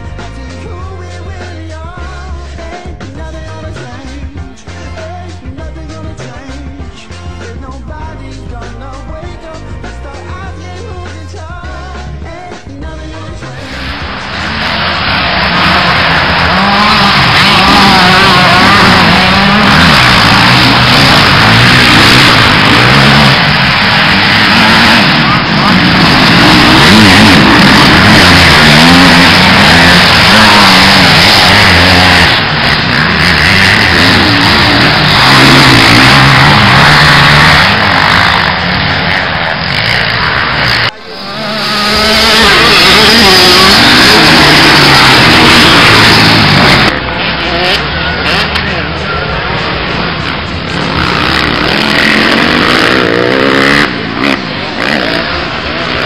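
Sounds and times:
dirt bike engines revving: 0.0s - 56.0s.

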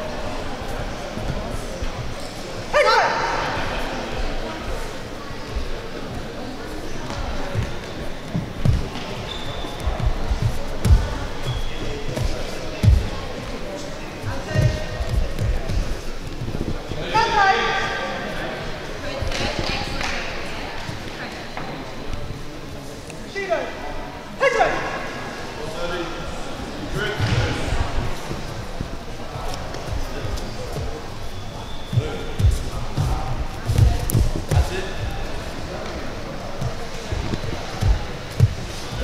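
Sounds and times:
voices echoing: 0.0s - 39.0s
bare feet thudding on mats: 7.1s - 13.2s, 32.0s - 34.7s.

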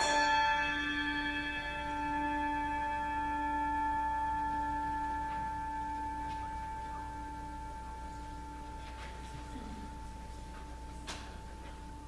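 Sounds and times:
bell ringing: 0.0s - 8.8s.

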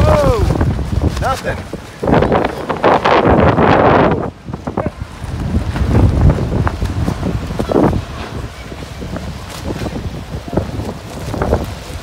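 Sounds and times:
storm wind gusting over microphone: 0.0s - 12.0s.

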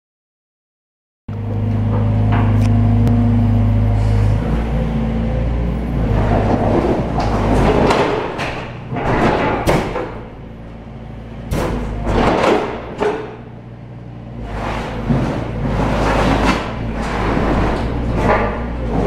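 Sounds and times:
excavator engine humming: 1.3s - 19.0s
debris cracking and crashing: 6.0s - 10.6s, 11.5s - 13.2s, 14.4s - 19.0s
grapple tearing into walls: 6.2s - 10.4s, 11.4s - 13.4s, 14.4s - 19.0s.

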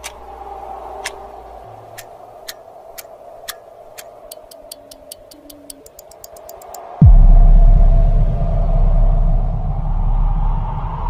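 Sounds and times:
clock ticking: 2.0s - 6.9s
steady sustained tone: 7.0s - 11.0s.

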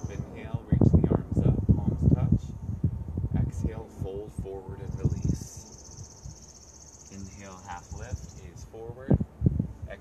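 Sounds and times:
low voices: 0.0s - 2.5s, 3.4s - 5.8s, 7.1s - 9.2s.

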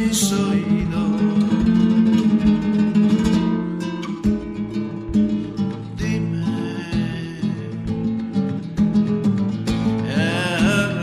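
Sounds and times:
classical guitar playing: 0.0s - 11.0s.

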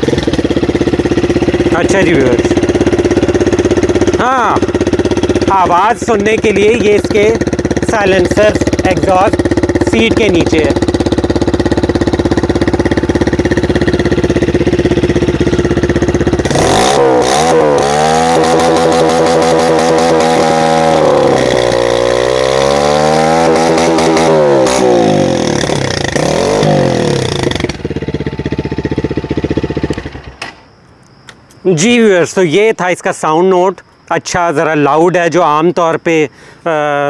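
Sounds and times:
motorcycle engine idling and revving: 0.0s - 30.6s.

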